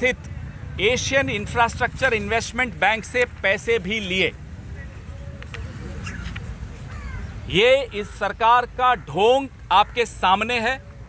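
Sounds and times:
low outdoor background noise: 0:00.0 - 0:11.0
crow cawing: 0:06.9 - 0:07.3.

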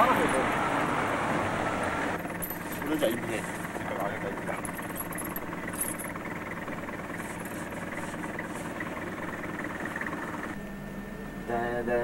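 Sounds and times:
car engine idling: 0:00.0 - 0:10.6
metallic clinks of snow chains: 0:02.3 - 0:03.1, 0:04.5 - 0:06.2.

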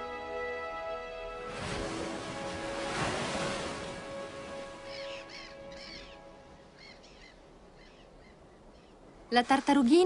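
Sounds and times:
soft background music: 0:00.0 - 0:07.2
bird harsh crow-like calls: 0:04.9 - 0:06.2.

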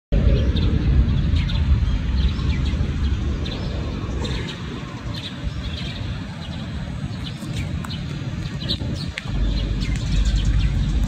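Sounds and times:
steady low rumble: 0:00.1 - 0:11.0
small birds chirping: 0:00.2 - 0:11.0.

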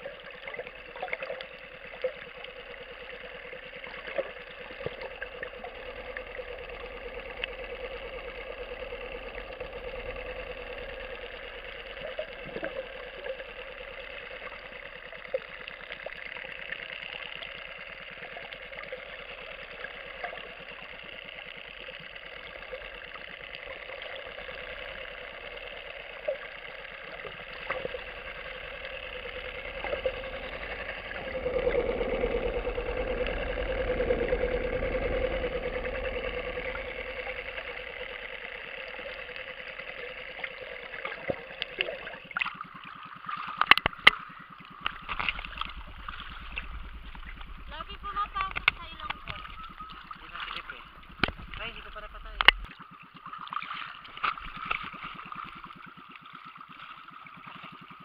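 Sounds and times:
boat engine droning underwater: 0:00.0 - 0:58.0
sharp clicks: 0:43.4 - 0:52.7.

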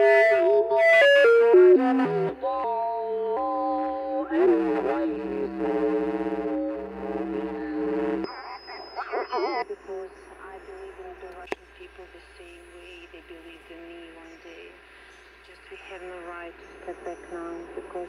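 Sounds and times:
music with voice on radio: 0:01.8 - 0:09.6
warbling off-pitch radio voice: 0:04.2 - 0:10.6
hissy radio signal: 0:04.3 - 0:18.0.

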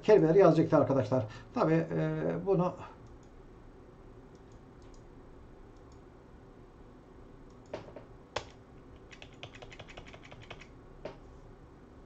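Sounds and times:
computer keyboard typing: 0:08.4 - 0:10.7.

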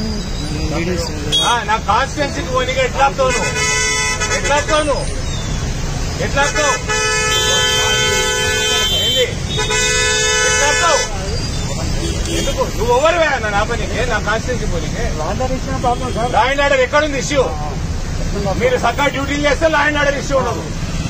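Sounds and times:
voices talking: 0:00.0 - 0:21.0
vehicle horn honking: 0:01.3 - 0:01.7, 0:03.2 - 0:05.0, 0:06.4 - 0:11.2.

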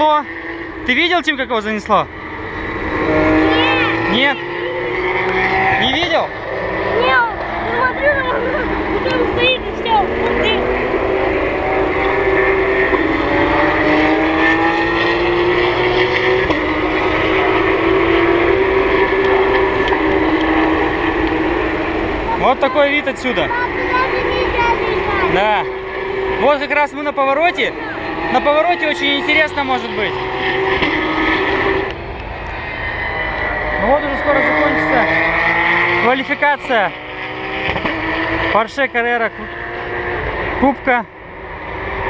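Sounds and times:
race car engines: 0:00.0 - 0:42.0.

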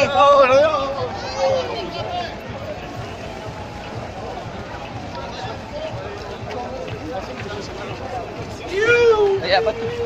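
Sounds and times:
runners chatting: 0:00.0 - 0:10.0
runners' footsteps on pavement: 0:00.0 - 0:10.0.

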